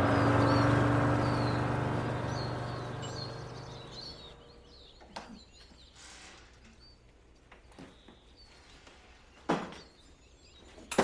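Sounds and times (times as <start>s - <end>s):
vehicle engine hum driving off: 0.0s - 5.0s
birds chirping: 0.0s - 11.0s.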